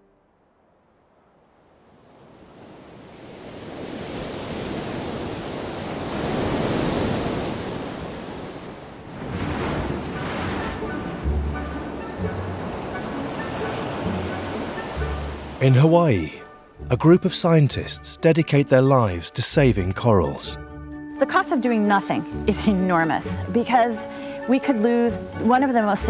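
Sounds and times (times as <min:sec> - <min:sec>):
ocean waves breaking: 0:00.0 - 0:18.0, 0:21.1 - 0:26.0
low musical notes: 0:10.2 - 0:26.0.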